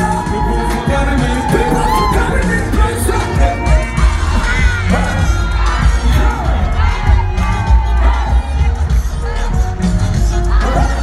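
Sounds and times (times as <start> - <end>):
audience cheering and shouting: 0.0 - 11.0
live gospel music with bass beat: 0.0 - 11.0.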